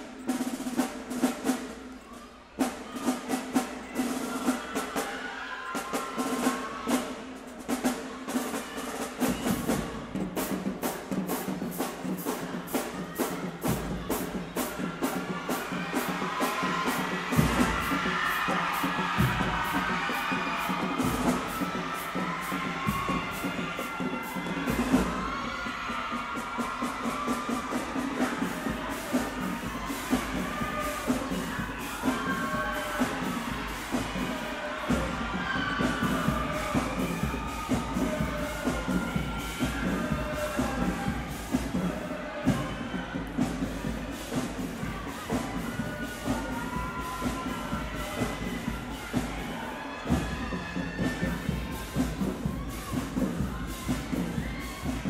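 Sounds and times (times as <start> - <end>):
snare and bass drum cadence: 5.8 - 55.0.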